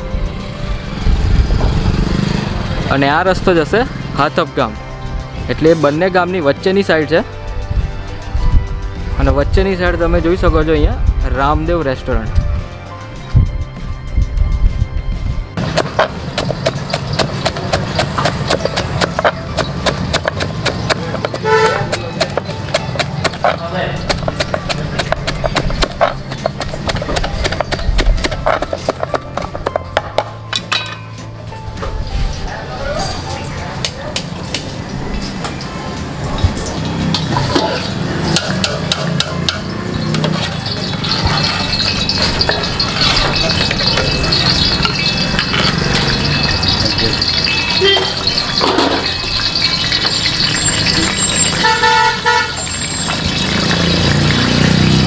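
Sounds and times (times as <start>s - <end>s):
knife chopping on wooden board: 15.6s - 30.3s
frying sizzle: 34.2s - 55.0s
ladle scraping in metal pot: 37.2s - 51.9s
metal clinks: 38.3s - 51.6s
brief pitched tone: 40.6s - 51.6s.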